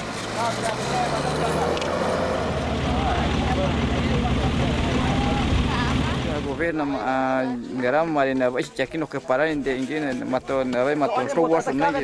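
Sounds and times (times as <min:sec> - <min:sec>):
vehicle engine rumbling: 0:00.0 - 0:06.8.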